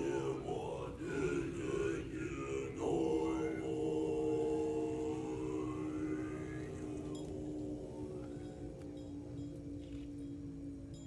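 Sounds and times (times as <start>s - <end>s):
monks chanting in low voices: 0.0s - 11.0s.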